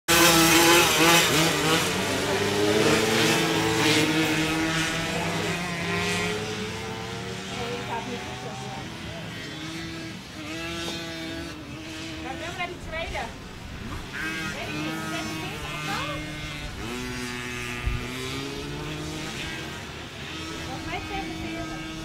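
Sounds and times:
off-road racing engines revving: 0:00.1 - 0:22.0.

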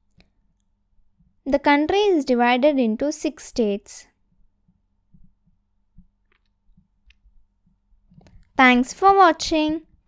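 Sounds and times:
soft low thumps: 0:04.6 - 0:07.4.

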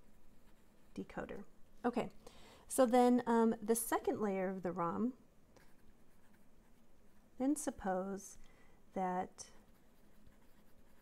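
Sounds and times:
pen scratching on paper: 0:00.0 - 0:01.1, 0:05.6 - 0:06.5, 0:09.6 - 0:11.0.

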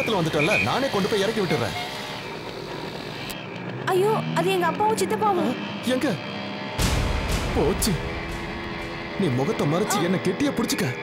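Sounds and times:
road traffic: 0:00.0 - 0:06.8
vehicle engine drone: 0:00.0 - 0:11.0.

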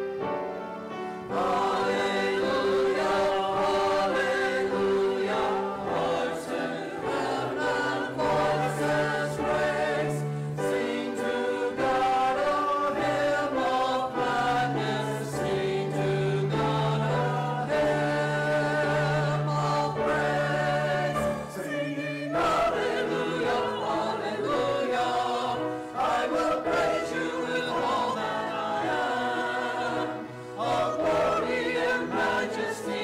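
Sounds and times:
choir singing held notes: 0:00.0 - 0:33.0.

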